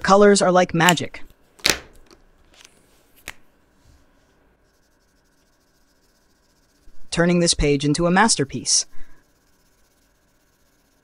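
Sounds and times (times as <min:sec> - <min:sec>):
marker scribbling on paper: 0:04.6 - 0:11.0.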